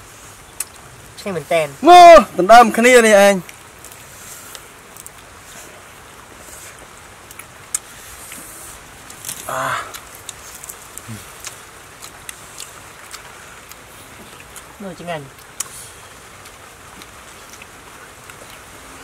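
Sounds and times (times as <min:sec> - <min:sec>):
person speaking: 0:01.2 - 0:03.5, 0:14.8 - 0:15.4
hands handling food rustling: 0:03.4 - 0:14.6.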